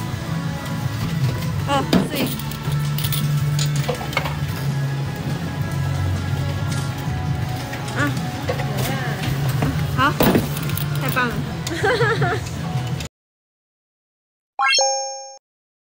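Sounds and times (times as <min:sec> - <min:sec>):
arcade music: 0:14.6 - 0:15.4.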